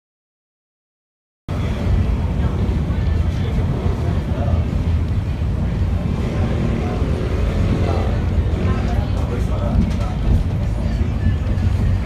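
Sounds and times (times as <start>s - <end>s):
bus engine and road rumble: 1.5s - 12.0s.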